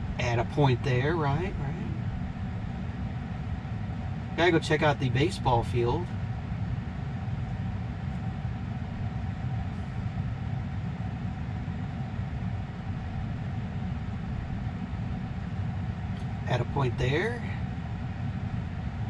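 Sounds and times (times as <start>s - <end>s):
faint steady whine: 0.0s - 19.0s
low cabin hum: 0.0s - 19.0s.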